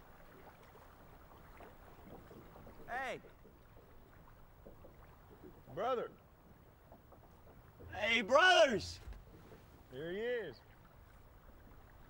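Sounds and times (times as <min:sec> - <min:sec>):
water sounds: 0:00.0 - 0:12.0
person calling out: 0:08.0 - 0:09.0.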